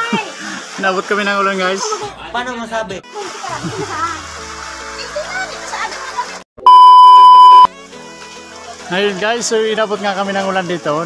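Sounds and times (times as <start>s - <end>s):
music: 1.8s - 6.4s, 7.7s - 11.0s
censor bleep: 6.7s - 7.7s.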